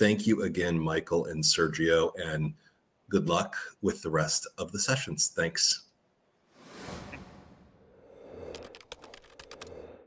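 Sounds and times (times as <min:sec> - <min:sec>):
computer keyboard clicks: 0:08.5 - 0:10.0.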